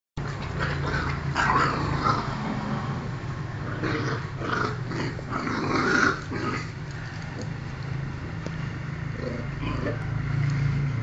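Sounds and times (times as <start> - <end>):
small dogs growling: 0.2 - 2.5, 3.6 - 7.1, 9.1 - 10.1.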